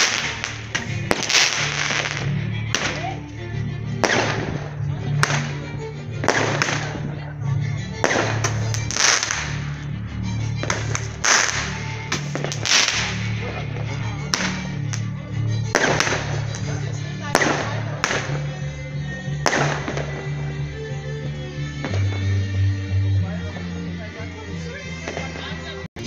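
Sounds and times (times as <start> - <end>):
fireworks bangs and cracks: 0.0 - 3.2, 4.0 - 7.2, 8.0 - 9.9, 10.5 - 18.7, 19.3 - 22.4, 25.0 - 25.5
background music with bass line: 0.0 - 26.0.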